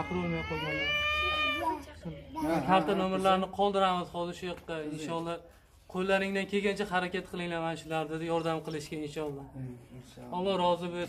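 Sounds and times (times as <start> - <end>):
small child crying wail: 0.0 - 2.8.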